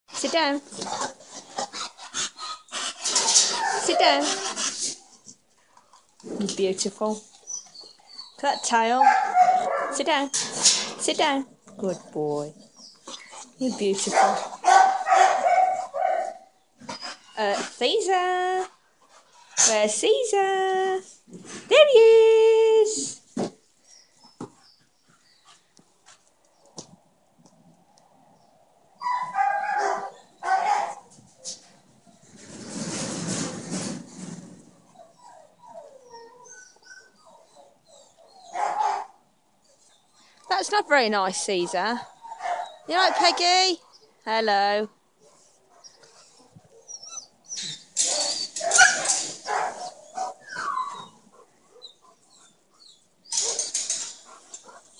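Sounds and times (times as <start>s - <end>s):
dog whining: 7.3s - 10.5s, 29.0s - 31.1s, 34.9s - 39.1s, 45.7s - 54.9s
dog barking: 9.0s - 10.0s, 14.1s - 16.5s, 29.2s - 31.0s, 38.5s - 39.2s, 42.3s - 42.8s, 48.6s - 50.4s.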